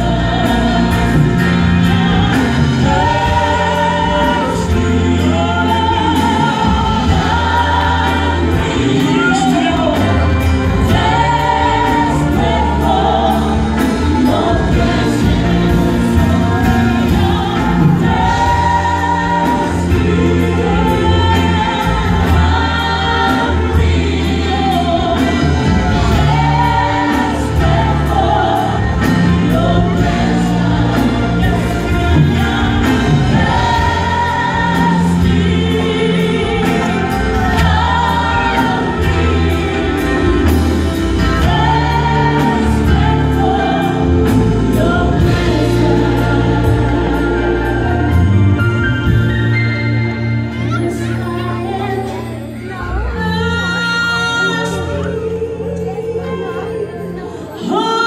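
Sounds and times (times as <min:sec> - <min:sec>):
drums: 0:00.0 - 0:56.7
keyboard: 0:00.0 - 0:58.0
singers in harmony: 0:00.0 - 0:58.0.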